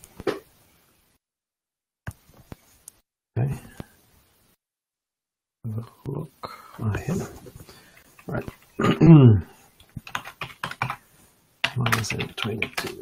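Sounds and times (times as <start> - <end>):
typing on keyboard: 9.9 - 11.0, 11.6 - 13.0.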